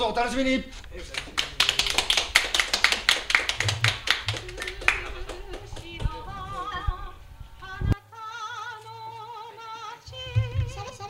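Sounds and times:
small group clapping: 1.0 - 6.8.

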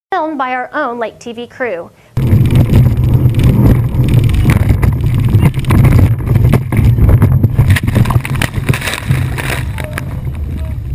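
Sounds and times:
speedboat engine running: 2.2 - 10.9
wind buffeting microphone: 2.2 - 10.9.

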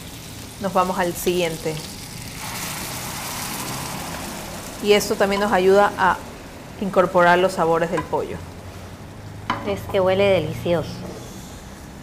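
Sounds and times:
sauce sizzling and bubbling: 0.0 - 12.0.

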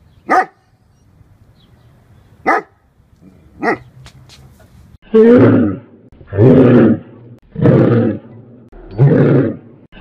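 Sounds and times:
large dog barking: 0.3 - 0.6, 2.4 - 2.8, 3.5 - 3.9.

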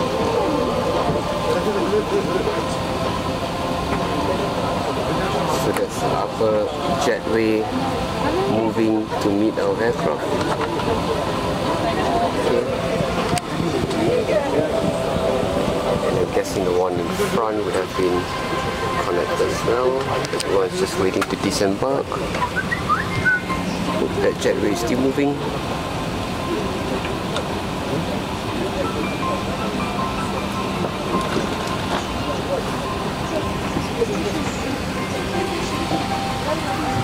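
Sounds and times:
airplane cabin hum: 0.0 - 37.0
passengers talking: 0.0 - 37.0
ventilation air rushing: 0.0 - 37.0.

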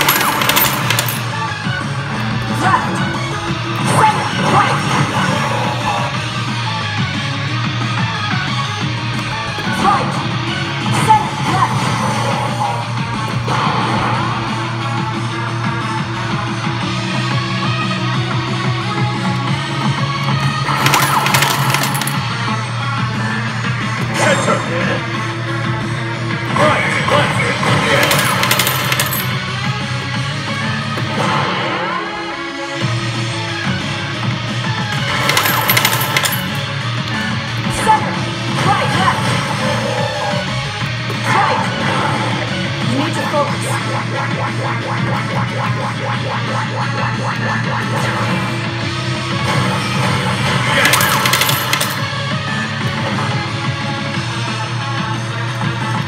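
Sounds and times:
slot machine music: 0.0 - 40.8, 49.1 - 53.7.

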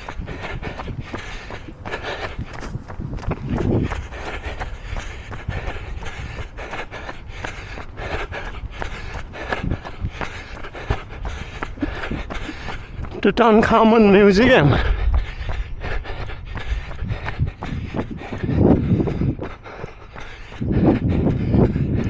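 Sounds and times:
running footsteps on stone: 0.0 - 22.0
wind rumble on microphone: 0.0 - 22.0.

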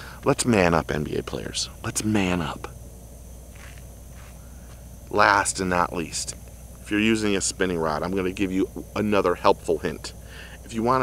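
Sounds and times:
faint high hiss: 0.0 - 11.0
low hum: 0.0 - 11.0.

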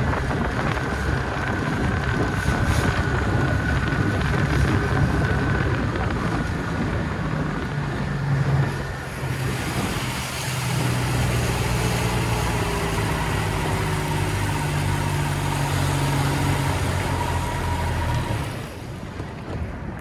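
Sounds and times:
outboard motor running: 0.0 - 19.9
water rushing: 0.0 - 20.0
wind: 0.0 - 20.0.

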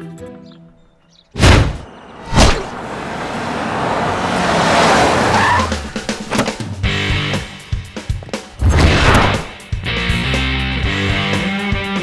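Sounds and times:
tyres skidding on dirt: 1.1 - 9.6
car engine running: 1.8 - 8.4.

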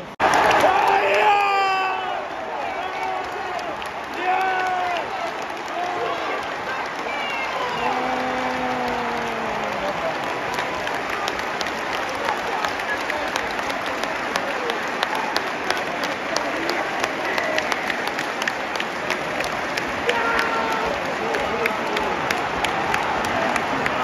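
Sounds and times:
stadium crowd cheering: 0.0 - 24.0
people shouting: 0.2 - 10.1, 20.0 - 22.2.

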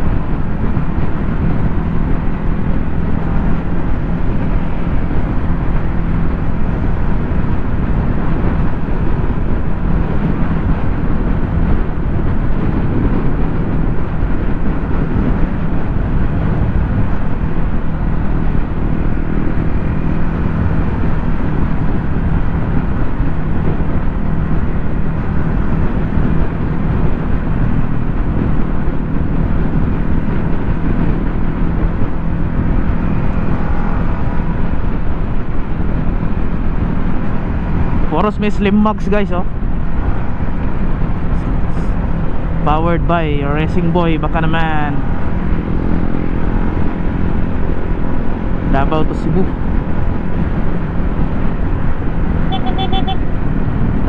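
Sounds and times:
motor scooter engine humming: 0.0 - 38.2, 44.9 - 54.0
wind rushing over microphone: 0.0 - 54.0.

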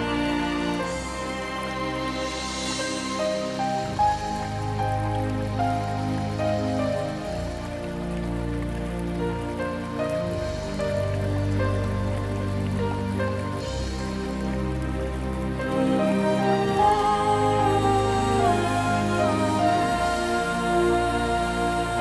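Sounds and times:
slow instrumental music: 0.0 - 22.0.

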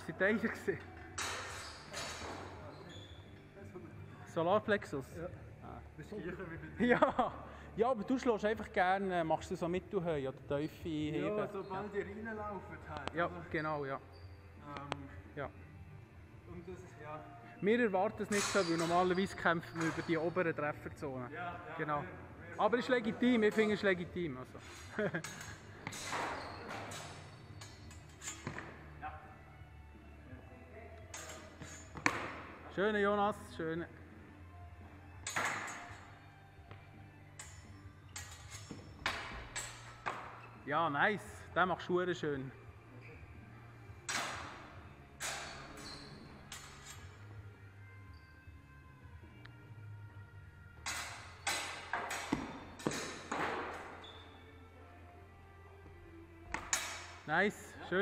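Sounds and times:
fencing swords clashing: 1.1 - 2.6, 18.3 - 20.4, 24.6 - 28.9, 31.1 - 32.4, 35.2 - 36.2, 37.3 - 40.4, 44.1 - 47.2, 50.8 - 54.0, 56.5 - 57.3.

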